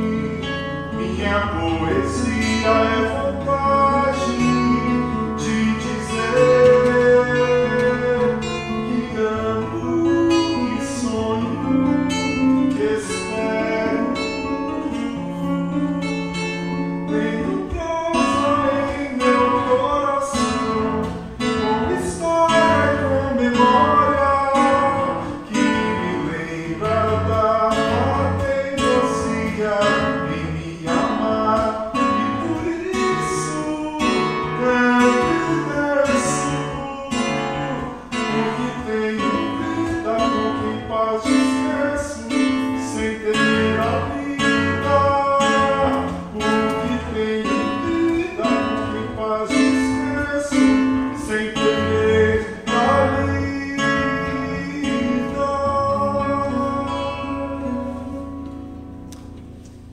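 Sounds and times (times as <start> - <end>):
acoustic guitar strummed and picked: 0.0 - 59.9.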